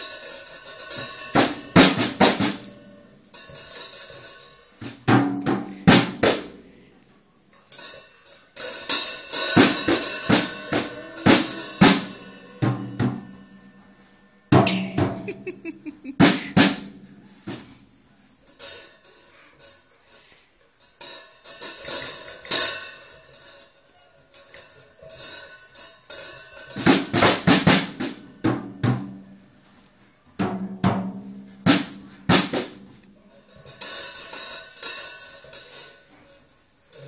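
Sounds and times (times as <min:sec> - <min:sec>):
cymbal crashes: 0:09.4 - 0:13.9, 0:14.5 - 0:15.3
drum hits: 0:09.6 - 0:13.4, 0:14.5 - 0:17.6.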